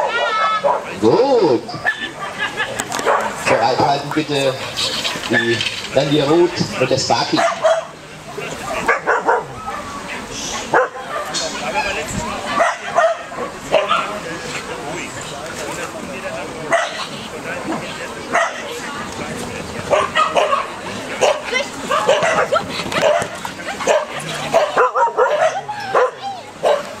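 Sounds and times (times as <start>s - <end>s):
dog barking and yipping: 0.0s - 0.9s, 3.0s - 3.4s, 7.3s - 7.9s, 8.7s - 9.8s, 19.9s - 26.9s.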